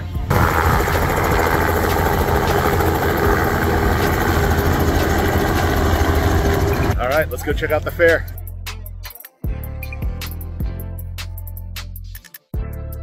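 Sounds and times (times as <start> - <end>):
helicopter rotor chopping: 0.3 - 7.2.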